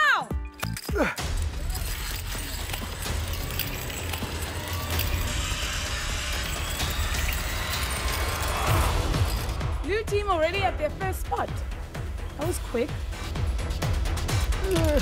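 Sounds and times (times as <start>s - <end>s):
zip line pulleys whirring: 1.2s - 9.6s.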